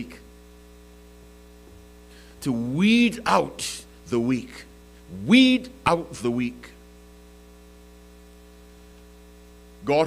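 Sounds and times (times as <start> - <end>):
electrical mains hum: 0.0 - 10.0
man talking: 2.4 - 6.8.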